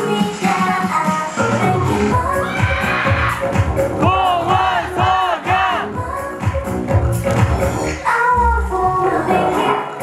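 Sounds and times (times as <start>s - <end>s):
song bass beat: 1.4s - 9.9s.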